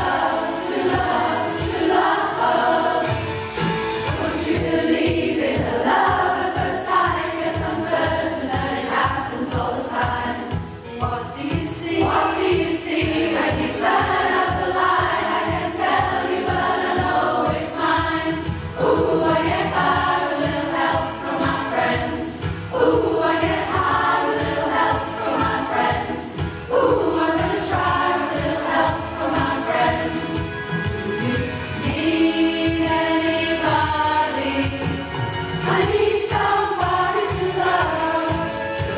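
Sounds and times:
choir singing in harmony: 0.0 - 38.9.

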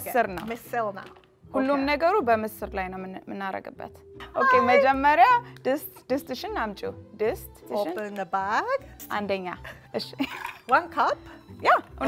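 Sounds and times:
faint background music: 0.0 - 12.0
women talking: 4.3 - 5.8.

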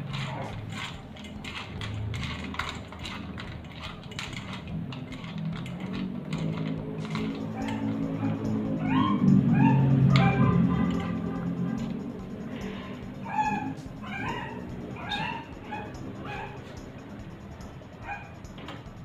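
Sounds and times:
background music: 0.0 - 19.0
puppy whining and yipping: 7.1 - 12.0, 12.6 - 17.0, 18.0 - 18.4.

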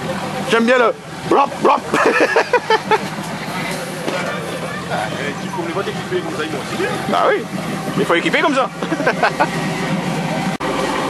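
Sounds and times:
engine running at low revs: 0.0 - 11.0.

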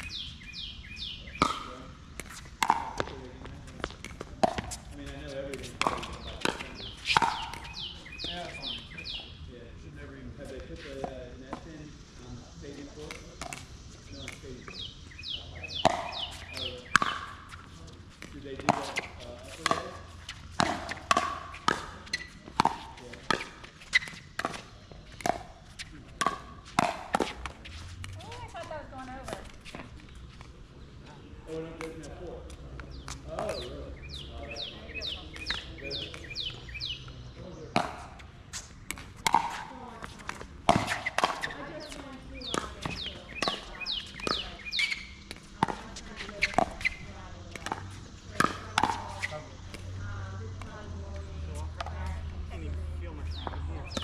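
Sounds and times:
paddles hitting plastic ball: 1.3 - 8.4, 13.1 - 14.9, 15.7 - 30.5, 35.0 - 50.0.

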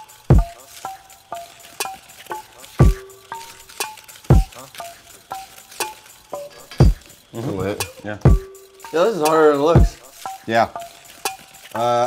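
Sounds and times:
clicky percussion ticks: 0.0 - 12.0
deep kick drum: 0.3 - 0.5, 8.3 - 8.5, 9.8 - 10.0.

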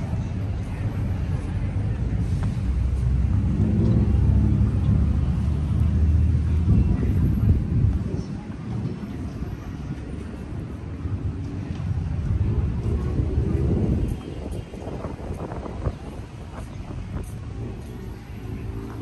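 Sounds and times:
people's voices: 0.0 - 19.0.

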